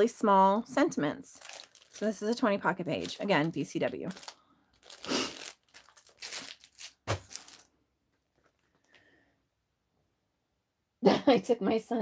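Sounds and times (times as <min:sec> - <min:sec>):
plastic pack crinkling: 0:01.2 - 0:07.7.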